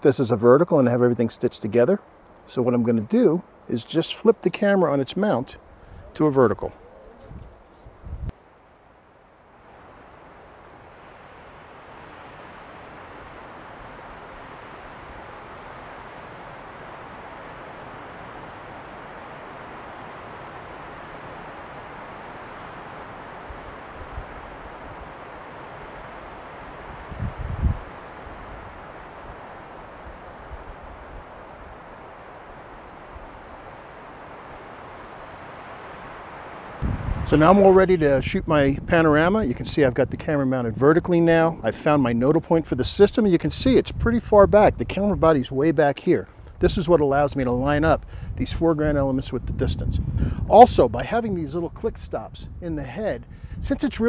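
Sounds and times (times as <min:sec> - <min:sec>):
steady wind hiss: 0:00.0 - 0:54.0
wind buffeting microphone: 0:05.7 - 0:08.4, 0:16.4 - 0:33.8, 0:36.7 - 0:41.4, 0:42.5 - 0:45.6, 0:46.5 - 0:54.0.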